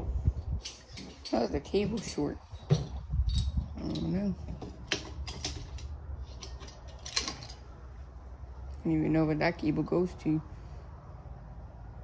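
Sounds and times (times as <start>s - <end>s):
small parts clicking and rattling: 0.6s - 7.6s.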